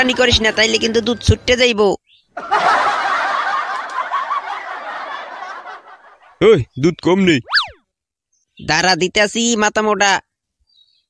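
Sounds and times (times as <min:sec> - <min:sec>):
crowd laughing: 0:02.4 - 0:06.4.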